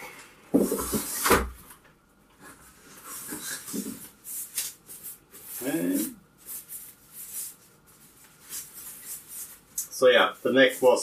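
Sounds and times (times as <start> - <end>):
cardboard and wrap rustling: 0.5 - 1.7, 2.4 - 11.0.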